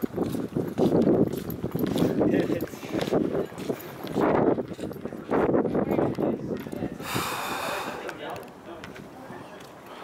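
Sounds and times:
faint outdoor background: 0.0s - 10.0s
breathy exhale: 7.0s - 8.1s.

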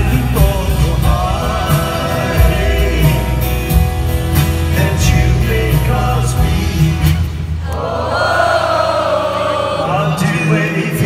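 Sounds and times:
audience singing along: 0.0s - 11.0s
live band music: 0.0s - 11.0s.

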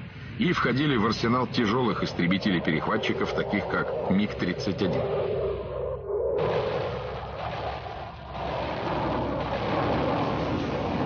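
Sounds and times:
rushing jet engine noise: 0.0s - 11.0s.

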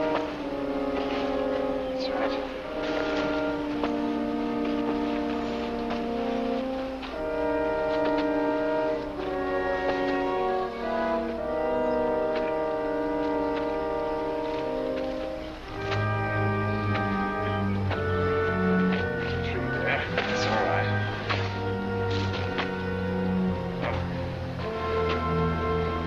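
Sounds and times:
orchestral brass chords: 0.0s - 26.0s.

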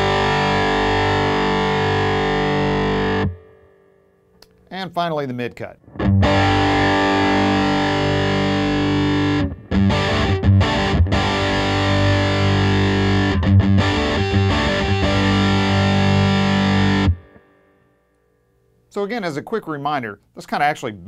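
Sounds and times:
distorted electric guitar chords: 0.0s - 4.0s, 5.8s - 17.9s.

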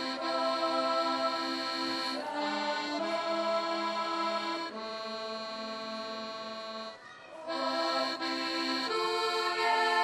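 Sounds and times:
accordion sustained chord: 0.0s - 10.0s.

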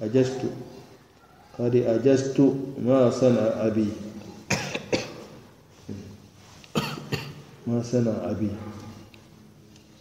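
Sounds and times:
man coughing: 4.3s - 5.4s, 6.7s - 7.5s.

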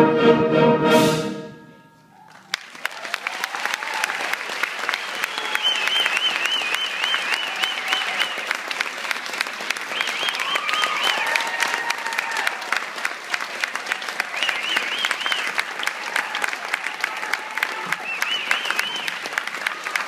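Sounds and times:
audience applauding: 2.2s - 20.0s.

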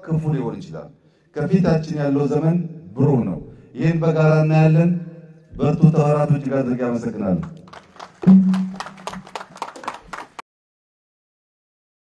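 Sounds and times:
crowd hand clapping: 7.4s - 10.4s.

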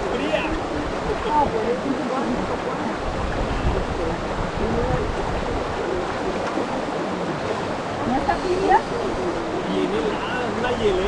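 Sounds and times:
faint voice: 0.0s - 11.0s
stream water running among rocks: 0.0s - 11.0s
wind buffeting microphone: 0.0s - 11.0s.

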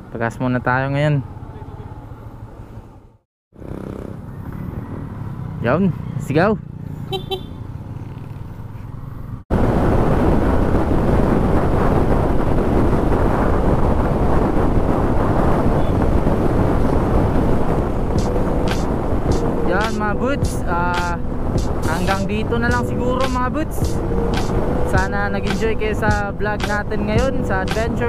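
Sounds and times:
motorcycle engine and road noise: 0.0s - 28.0s
wind rush on helmet microphone: 9.3s - 28.0s
person speaking: 19.5s - 24.0s.

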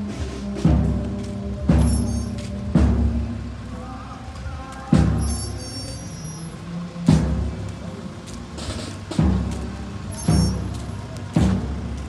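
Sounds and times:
bass drum booming: 0.4s - 3.7s, 9.1s - 12.0s.

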